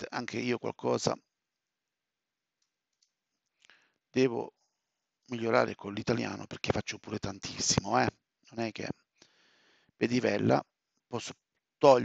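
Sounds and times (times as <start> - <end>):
man speaking: 0.0 - 1.2, 4.2 - 4.5, 5.3 - 8.9, 10.0 - 10.6, 11.2 - 12.0
faint clicks: 2.6 - 3.8.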